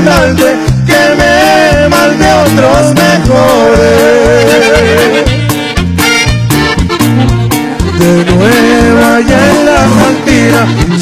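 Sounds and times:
alternating bass line: 0.0s - 11.0s
band melody in harmony: 0.0s - 11.0s
drums: 0.0s - 11.0s.

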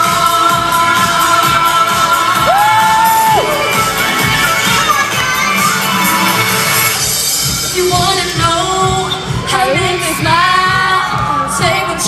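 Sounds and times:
crowd: 0.0s - 12.0s
loud pop music: 0.0s - 12.0s
person whooping: 2.4s - 3.7s.

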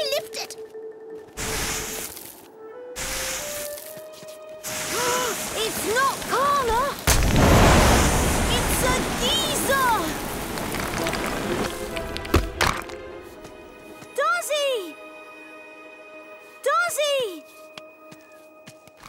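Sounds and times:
background music: 0.0s - 7.0s, 9.0s - 19.0s
steam rushing hiss: 1.4s - 2.2s, 3.0s - 3.7s, 4.6s - 6.6s, 7.2s - 10.8s.

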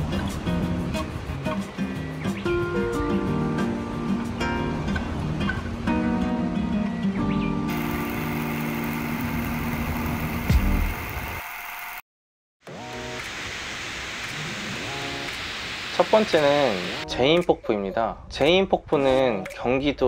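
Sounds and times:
background music with held notes: 0.0s - 9.9s, 16.4s - 20.0s
steady hiss: 7.7s - 12.0s, 13.0s - 17.0s.

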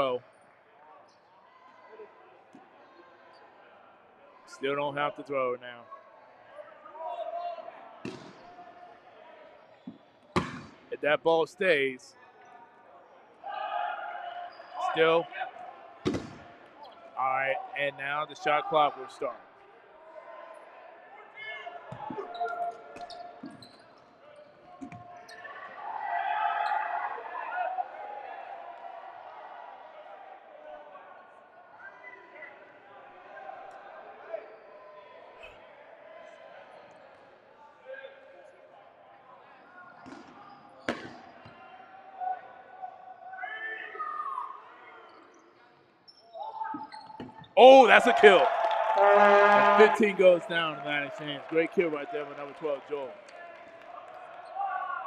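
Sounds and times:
people calling out: 47.6s - 50.5s.

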